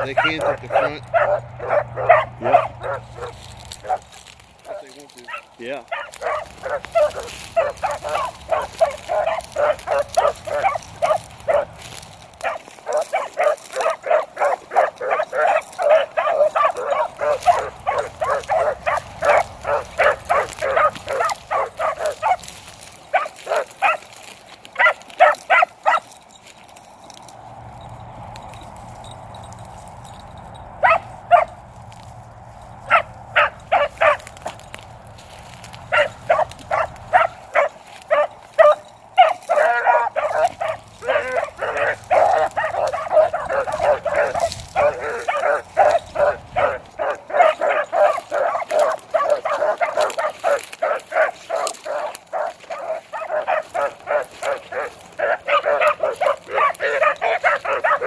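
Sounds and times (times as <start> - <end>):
dogs baying and barking: 0.0 - 58.0.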